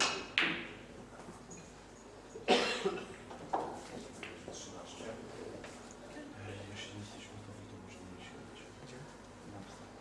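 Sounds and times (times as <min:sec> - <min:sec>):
person coughing: 0:02.5 - 0:03.2.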